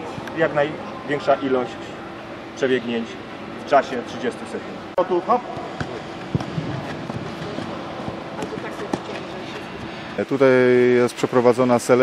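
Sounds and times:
football being kicked: 5.5s - 9.0s.

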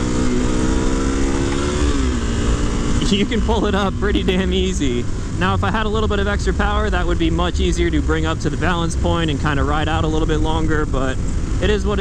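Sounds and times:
motorcycle engine revving hard: 0.0s - 12.0s.

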